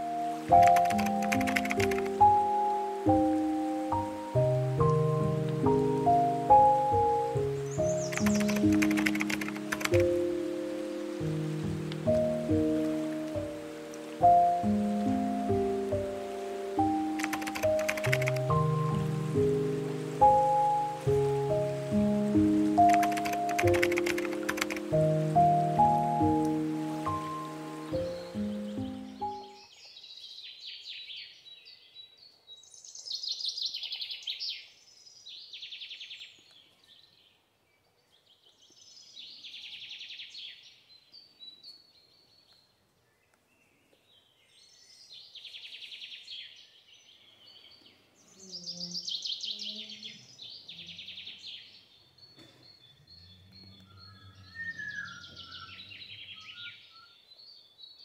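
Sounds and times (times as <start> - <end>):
bird singing: 0.0 - 19.3, 20.3 - 58.0
background music: 0.0 - 29.6.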